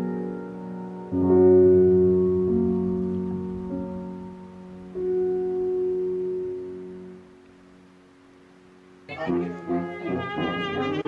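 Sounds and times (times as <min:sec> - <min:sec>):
keyboard chord held: 0:00.0 - 0:07.9, 0:09.0 - 0:11.0.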